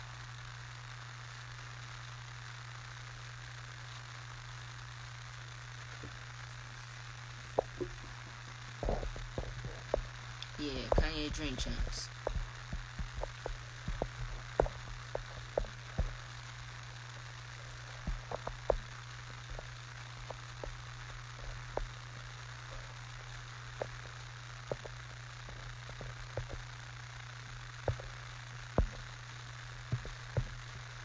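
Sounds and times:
low hum and hiss: 0:00.0 - 0:31.0.

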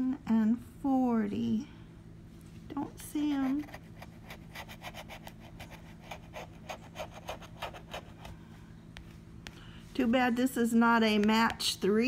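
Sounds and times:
scratching lottery ticket with metal: 0:03.2 - 0:08.2.

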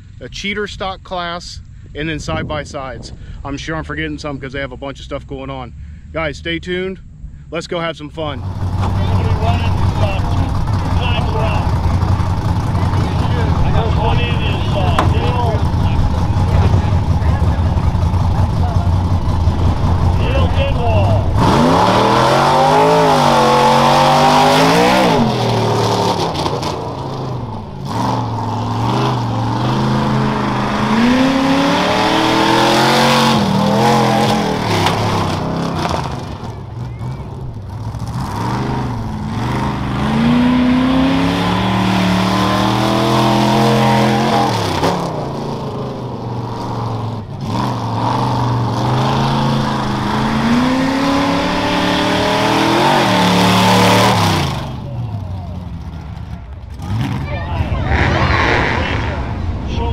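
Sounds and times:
truck engine revving: 0:08.2 - 0:59.9.

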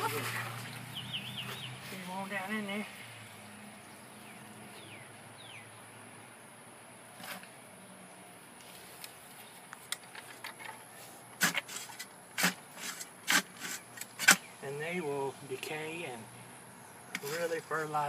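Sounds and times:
post hole digger crunching soil: 0:09.0 - 0:14.7, 0:17.1 - 0:18.0.

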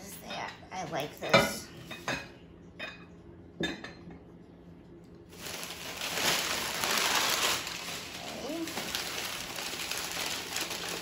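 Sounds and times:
plastic bag rustling: 0:05.3 - 0:11.0.

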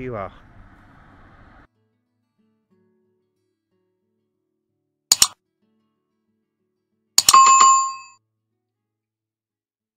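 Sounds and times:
quick clicks: 0:05.1 - 0:05.4
notification bell ding: 0:07.2 - 0:08.2.

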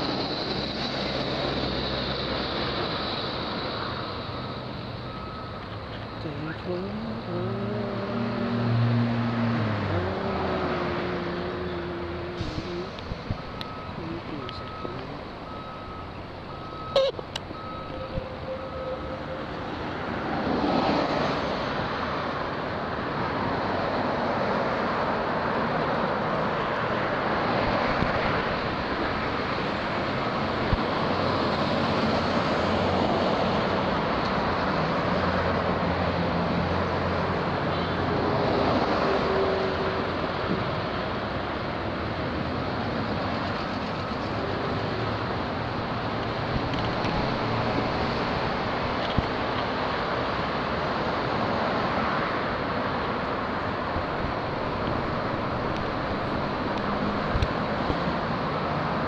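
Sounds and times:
road traffic passing: 0:00.0 - 0:59.0
reversing alarm beeping: 0:04.2 - 0:07.8, 0:11.0 - 0:19.6.

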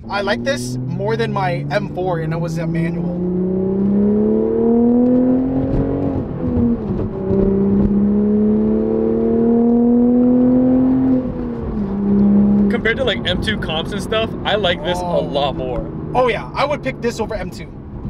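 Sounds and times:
car engine revving under acceleration: 0:00.0 - 0:18.0.

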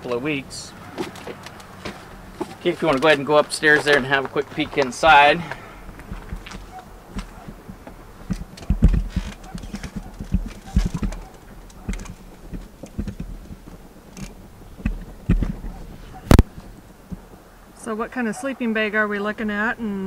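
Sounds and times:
knocks and thumps on ladder: 0:06.0 - 0:13.6.

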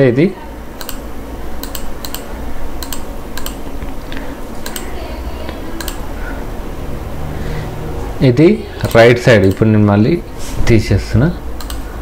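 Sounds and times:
low background hum: 0:00.0 - 0:12.0
computer mouse clicking: 0:00.8 - 0:01.0, 0:01.6 - 0:04.9, 0:05.5 - 0:06.0, 0:08.8 - 0:09.7, 0:11.6 - 0:11.9.

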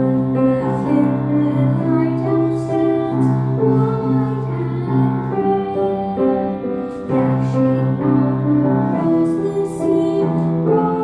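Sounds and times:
boy singing: 0:00.0 - 0:06.5, 0:07.1 - 0:11.0
piano accompaniment: 0:00.0 - 0:11.0.

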